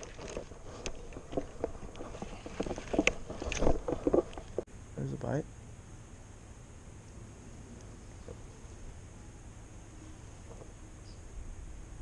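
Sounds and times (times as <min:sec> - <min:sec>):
fishing rod and reel knocking: 0:00.0 - 0:04.6.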